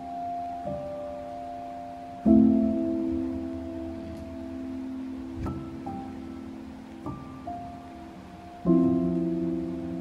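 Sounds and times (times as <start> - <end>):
slow relaxing piano music: 0.0 - 10.0.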